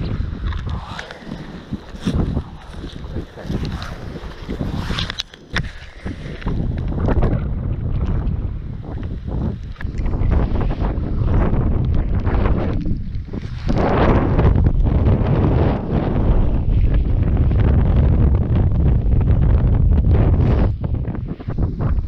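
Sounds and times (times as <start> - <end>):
waterproof clothing rustling: 0.0 - 7.5
wind buffeting microphone: 0.0 - 22.0.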